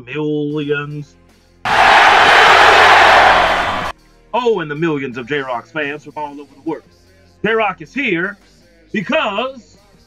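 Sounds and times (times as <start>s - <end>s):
crowd cheering: 1.7s - 3.9s.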